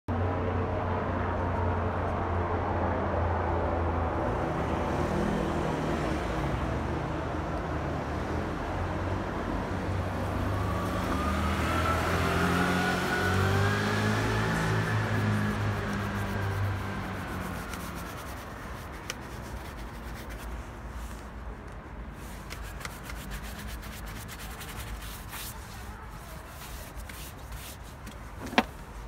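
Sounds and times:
city traffic rumble: 0.1s - 29.0s
engine note rising: 10.4s - 17.9s.

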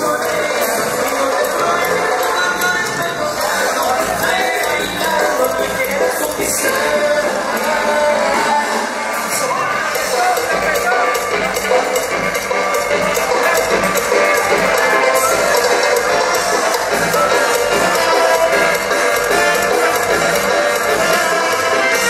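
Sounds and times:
amplified dance-band music: 0.0s - 22.0s.

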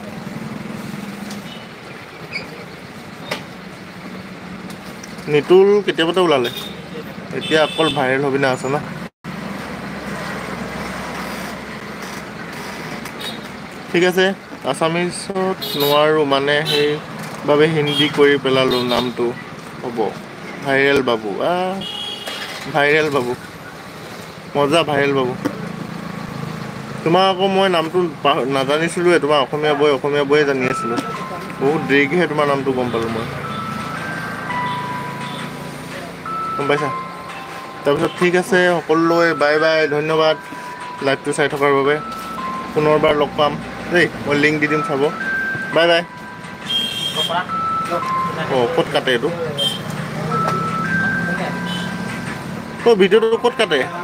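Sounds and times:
road vehicle hum: 0.0s - 54.0s
electronic beeping melody: 29.6s - 54.0s.

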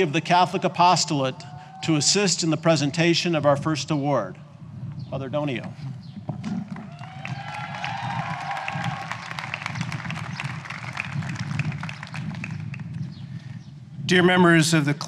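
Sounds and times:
audience applauding: 6.9s - 12.9s.

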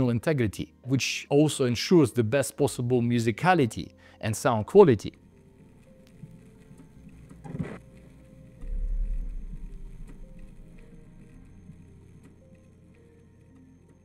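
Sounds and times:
faint background music: 0.0s - 14.0s
deep bass boom: 8.6s - 10.6s.

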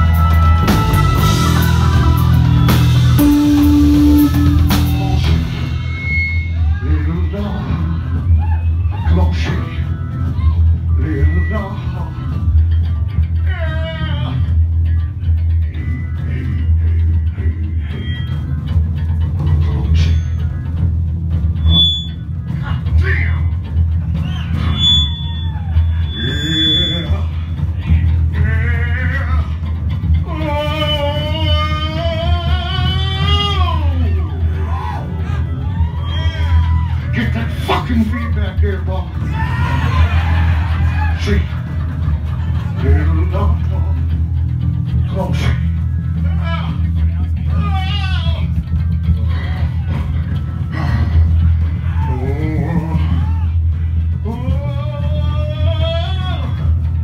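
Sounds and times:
punk rock band playing: 0.0s - 57.0s
person shouting or singing: 30.3s - 35.1s.

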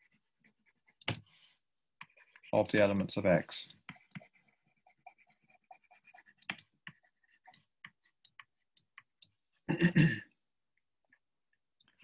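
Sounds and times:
stylus writing on tablet screen: 0.0s - 9.7s.

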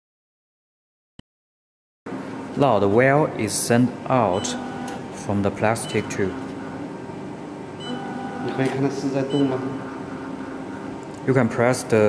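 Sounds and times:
person speaking: 2.6s - 6.5s, 8.4s - 10.0s.

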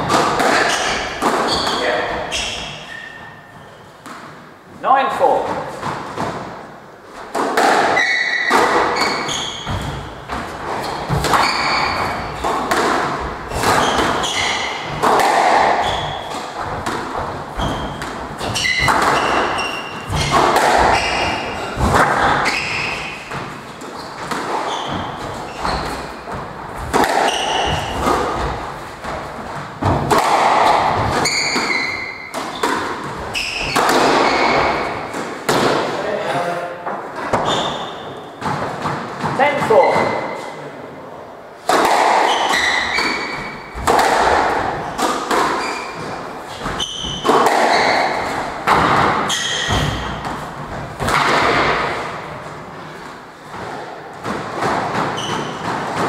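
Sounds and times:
squash ball thuds: 0.0s - 2.8s, 5.5s - 36.0s, 41.6s - 56.0s
shoes squeaking on wooden floor: 0.0s - 4.2s, 7.1s - 35.4s, 37.0s - 40.6s, 42.2s - 51.0s, 51.6s - 56.0s.

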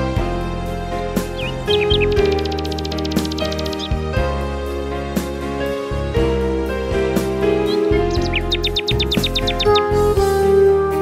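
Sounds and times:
slow instrumental music: 0.0s - 11.0s
nightingale trilling: 1.2s - 4.1s, 7.5s - 10.1s.

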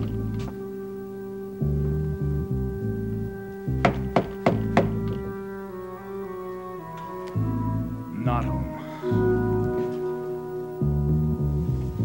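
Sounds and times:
organ chords: 0.0s - 12.0s
knuckles knocking on a door: 3.8s - 5.0s.

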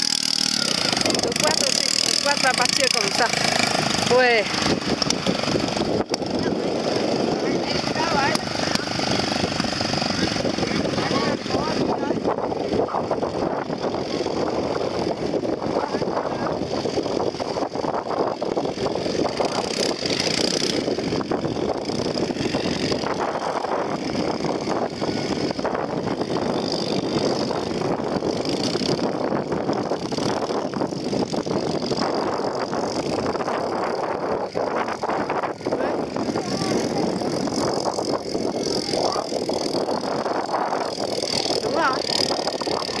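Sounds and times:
quad bike engines running: 0.0s - 43.0s
people's voices: 6.2s - 13.2s, 15.7s - 16.6s, 35.7s - 43.0s.

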